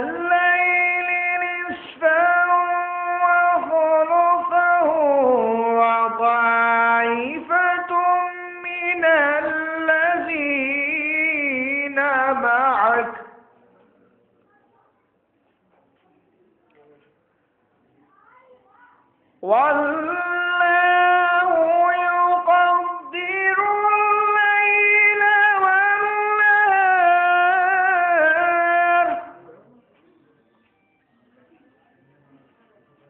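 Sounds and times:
man reciting melodically: 0.0s - 13.6s, 19.4s - 29.6s.

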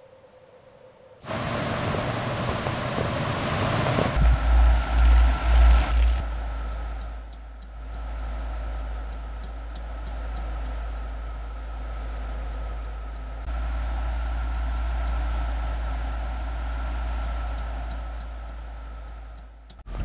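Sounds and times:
steady low hum: 0.0s - 20.0s
clock ticking: 6.7s - 8.4s, 12.4s - 13.5s, 14.7s - 19.9s.

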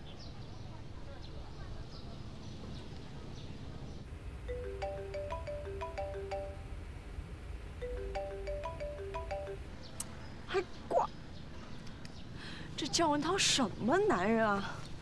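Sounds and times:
low steady hum: 4.1s - 12.6s
marimba-like ringtone melody: 4.5s - 6.8s, 7.8s - 9.8s.

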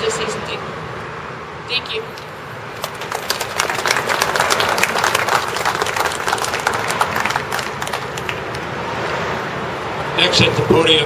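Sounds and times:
small group applauding: 2.8s - 8.8s.

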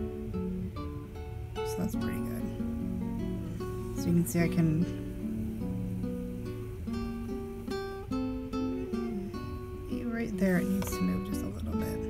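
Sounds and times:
acoustic guitar melody: 0.0s - 12.0s.

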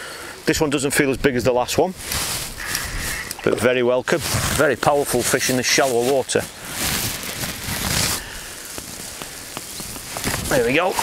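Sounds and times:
water pattering: 7.3s - 11.0s.

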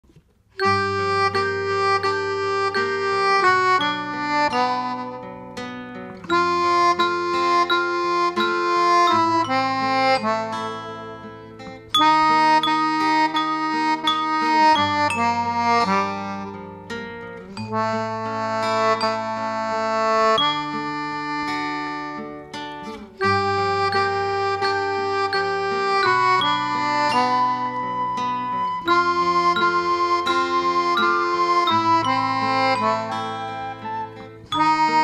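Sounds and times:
keyboard harmonica chords: 0.5s - 35.0s.

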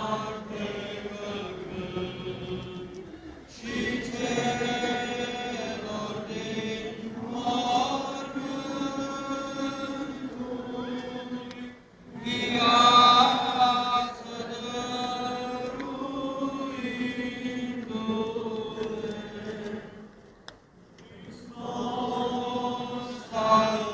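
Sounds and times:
liturgical chant: 0.0s - 23.9s.

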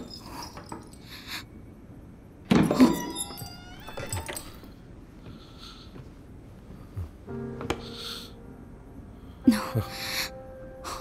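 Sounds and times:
woman crying quietly: 9.5s - 11.0s.

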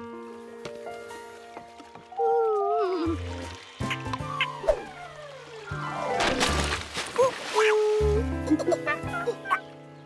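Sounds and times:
soft cartoon background music: 0.0s - 10.0s
cartoon monkey cooing: 7.5s - 9.6s.

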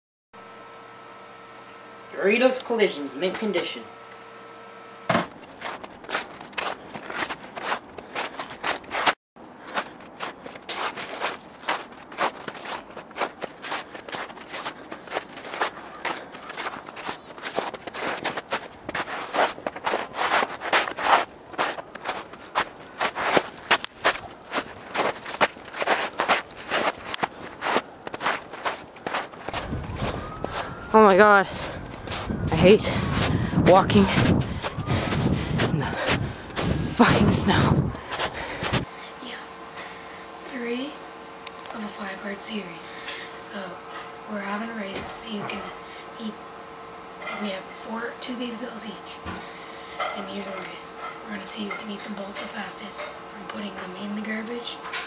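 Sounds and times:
room hum: 0.4s - 55.0s
footsteps crunching through snow: 5.1s - 38.9s.

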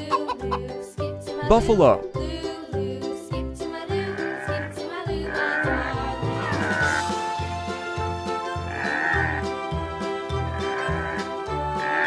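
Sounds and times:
background music with bass: 0.0s - 12.0s
water buffalo call: 4.1s - 7.5s, 8.6s - 9.6s, 10.3s - 12.0s.

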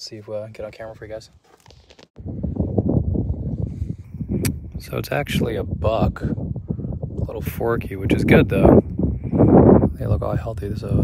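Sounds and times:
wind buffeting microphone: 2.2s - 11.0s.

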